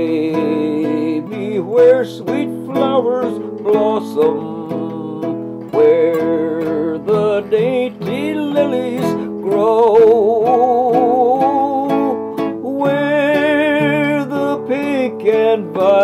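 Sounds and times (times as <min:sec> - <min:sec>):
acoustic guitar plucked chords: 0:00.0 - 0:16.0
man singing with vibrato: 0:00.0 - 0:16.0.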